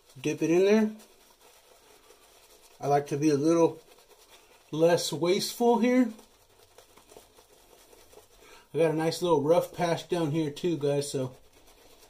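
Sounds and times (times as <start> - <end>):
shaving brush lathering face: 0.0 - 12.0
man talking: 0.2 - 1.0, 2.8 - 3.8, 4.7 - 6.2, 8.7 - 11.4.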